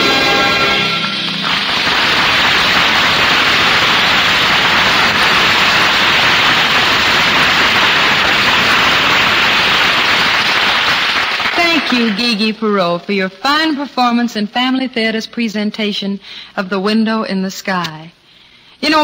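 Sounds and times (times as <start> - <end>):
closing music: 0.0 - 2.8
audience applause: 0.0 - 12.6.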